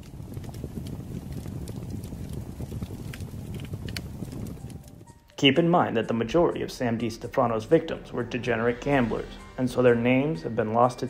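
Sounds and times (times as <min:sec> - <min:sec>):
wood fire crackling: 0:00.0 - 0:11.0.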